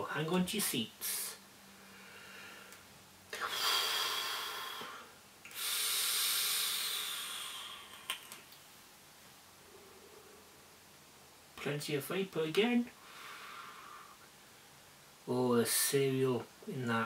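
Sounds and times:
airy hiss of vape inhaling: 3.4s - 8.1s.

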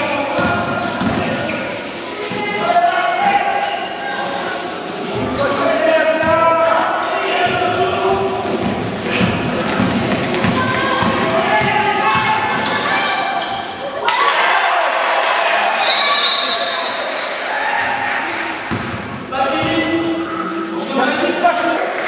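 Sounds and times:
people shouting in a hall: 0.0s - 8.4s, 10.4s - 18.7s
basketball bouncing on gym floor: 7.4s - 12.5s, 18.7s - 19.0s.

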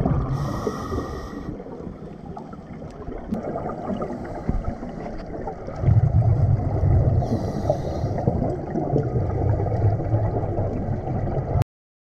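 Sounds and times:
underwater regulator bubbles gurgling: 0.0s - 11.6s.

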